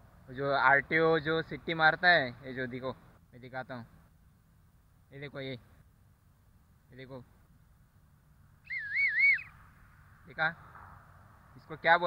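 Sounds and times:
warbling plastic whistle: 8.7 - 9.5.

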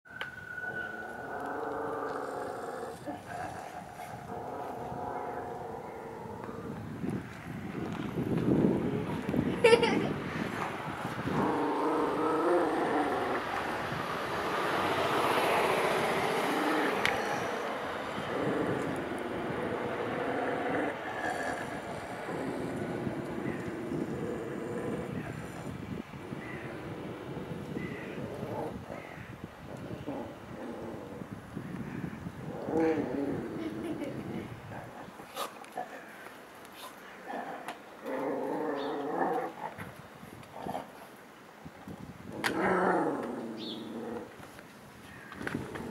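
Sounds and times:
dog growling: 0.9 - 6.8, 11.2 - 13.9, 15.7 - 28.8, 32.5 - 36.1, 37.2 - 39.8, 42.3 - 44.3
broad rushing noise: 2.3 - 29.6.

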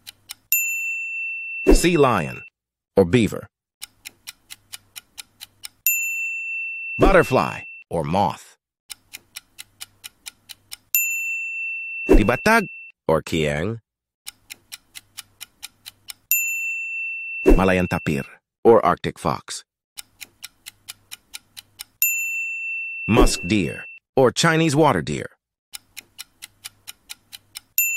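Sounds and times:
clock ticking: 0.0 - 0.6, 3.8 - 6.0, 7.0 - 7.8, 8.9 - 11.0, 14.3 - 16.4, 20.0 - 22.0, 25.7 - 27.9
bright bell ding: 0.6 - 2.5, 5.9 - 7.8, 11.0 - 12.9, 16.4 - 18.2, 22.1 - 24.0.

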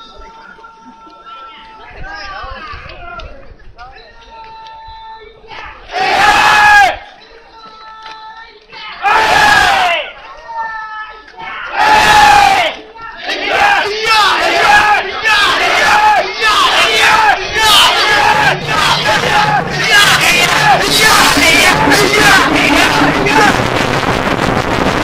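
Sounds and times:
crowd shouting in unison: 5.7 - 7.0, 8.8 - 10.1, 11.4 - 23.6
rhythmic cries: 13.4 - 25.0.

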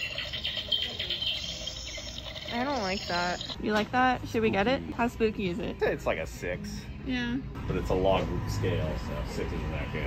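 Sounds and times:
high fluttering electronic chitter: 0.0 - 3.6.

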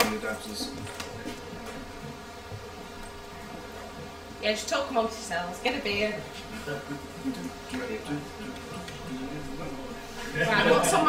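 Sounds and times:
steady buzzing hum: 0.0 - 11.0.

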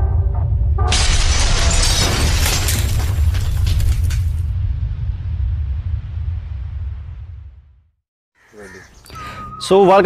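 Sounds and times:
shattering crash with debris: 0.9 - 4.6
deep bass rumble: 1.7 - 8.0.

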